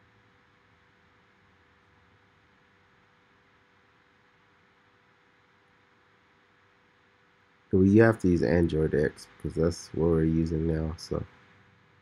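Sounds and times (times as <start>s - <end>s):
microphone hiss: 0.0s - 12.0s
low hum: 7.8s - 11.2s.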